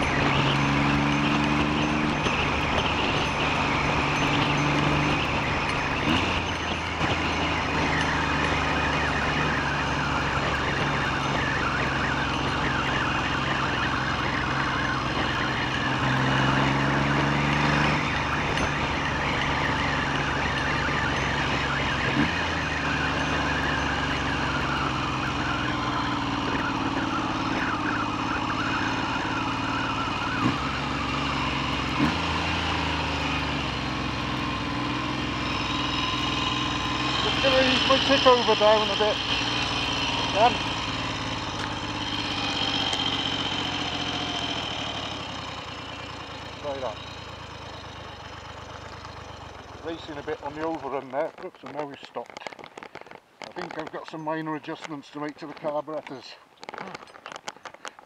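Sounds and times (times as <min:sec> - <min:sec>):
motorcycle engine running: 0:00.0 - 0:55.9.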